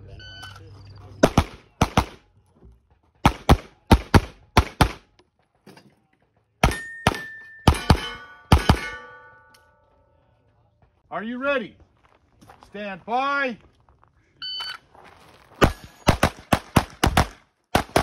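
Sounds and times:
pistol firing rapid shots: 0:01.2 - 0:02.2, 0:03.2 - 0:05.1, 0:16.1 - 0:18.0
steel targets ringing: 0:06.6 - 0:10.2, 0:15.6 - 0:16.2.

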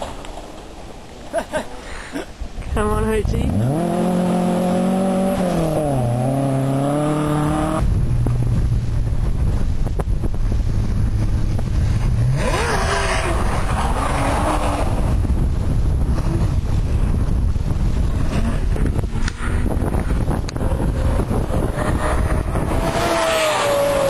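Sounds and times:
wind rumbling on microphone: 0:00.0 - 0:24.0.

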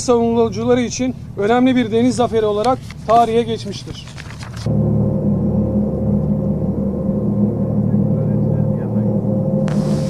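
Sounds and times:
ship engine droning: 0:04.4 - 0:10.0.

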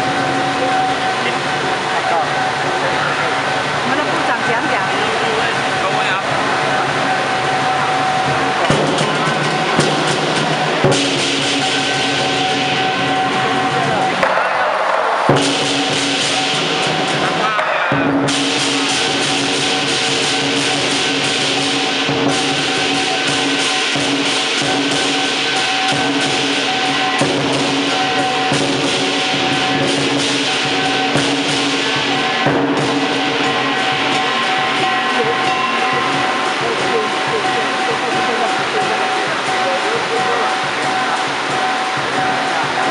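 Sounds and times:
lion dance drum cymbals and gong: 0:00.0 - 0:42.9.

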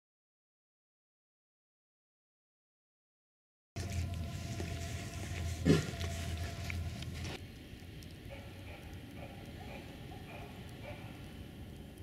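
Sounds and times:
low background hum: 0:03.8 - 0:12.0
dog barking deeply: 0:08.3 - 0:11.2.

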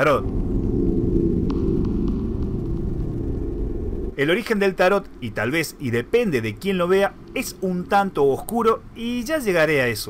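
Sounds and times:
low electronic drone: 0:00.0 - 0:09.2.

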